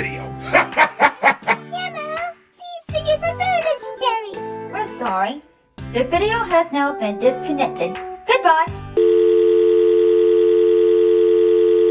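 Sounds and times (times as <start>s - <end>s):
telephone dial tone: 9.0s - 11.9s.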